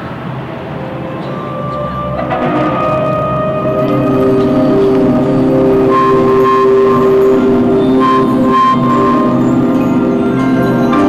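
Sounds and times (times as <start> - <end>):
marching band sustained chord: 0.4 - 11.0
higher wind note: 0.7 - 11.0.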